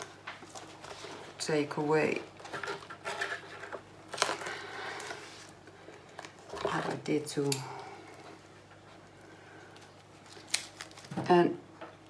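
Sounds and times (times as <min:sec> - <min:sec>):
handling noises scraping and rustling: 0:00.0 - 0:09.0.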